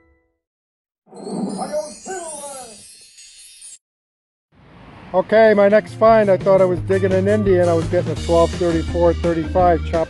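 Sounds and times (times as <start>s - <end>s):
sparkle sound effect shimmer: 1.2s - 3.8s.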